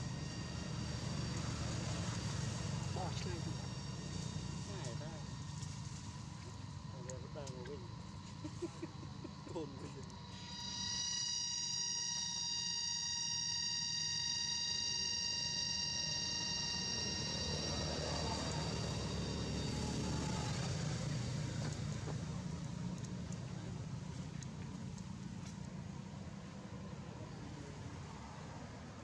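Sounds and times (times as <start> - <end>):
low engine rumble: 0.0 - 11.4, 14.0 - 29.0
distant engine whine: 0.0 - 29.0.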